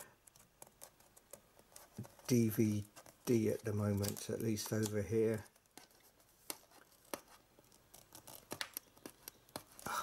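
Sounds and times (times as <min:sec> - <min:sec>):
fingers handling metal case: 0:00.0 - 0:10.0.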